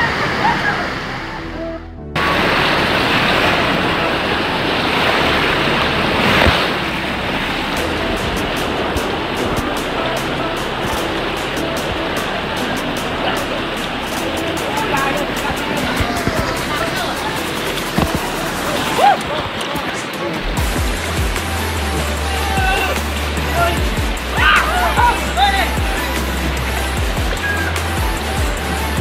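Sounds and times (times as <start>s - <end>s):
whitewater rapids roaring: 0.0s - 29.0s.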